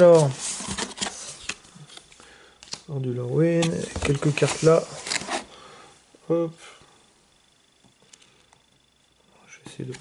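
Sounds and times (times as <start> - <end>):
rustling cardboard and paper: 0.0 - 1.6, 3.6 - 5.5.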